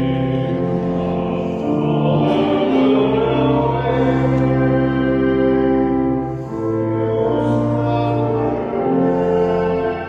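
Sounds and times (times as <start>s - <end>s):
church organ chords: 0.0s - 10.0s.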